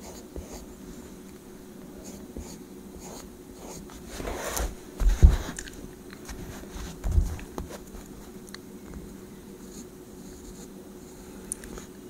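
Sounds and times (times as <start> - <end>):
pencil scratching on paper: 0.0 - 0.6, 2.0 - 5.5, 9.6 - 11.3.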